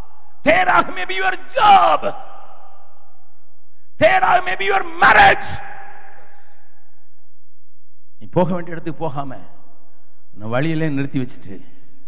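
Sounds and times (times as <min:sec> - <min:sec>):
man preaching into microphone: 0:00.0 - 0:02.8, 0:03.9 - 0:06.7, 0:08.2 - 0:09.7, 0:10.4 - 0:11.8
echo in a hall: 0:00.0 - 0:12.0.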